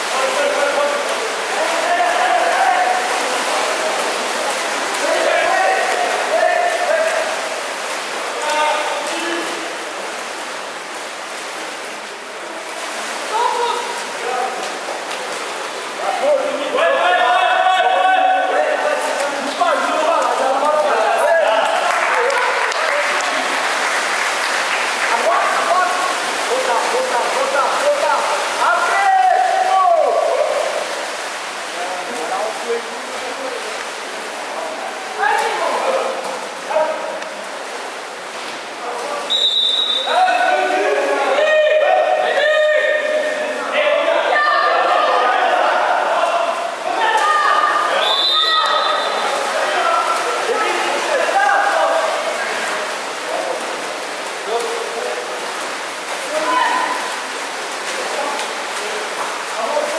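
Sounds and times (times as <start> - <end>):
swimmers splashing: 0.0 - 59.9
players shouting: 16.7 - 19.1, 39.9 - 52.4.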